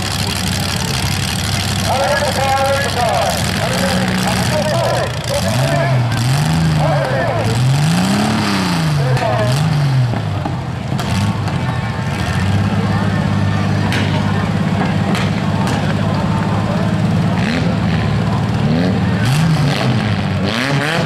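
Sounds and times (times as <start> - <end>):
car engine revving: 0.0 - 21.0
car engines idling: 0.0 - 21.0.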